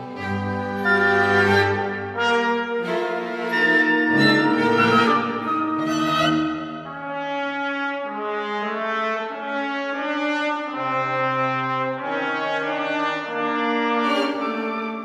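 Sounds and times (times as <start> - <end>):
chamber ensemble playing slow chords: 0.0 - 6.9.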